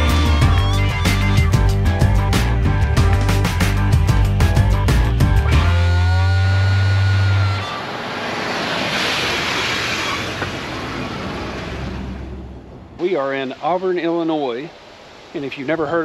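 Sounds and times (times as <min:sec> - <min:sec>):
background music: 0:00.0 - 0:07.3
truck tyres on brick road: 0:07.9 - 0:13.0.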